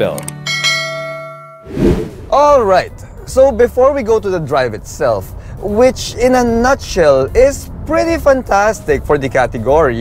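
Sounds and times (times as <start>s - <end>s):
bell-like chime: 0.5s - 1.6s
short whoosh: 1.7s - 2.5s.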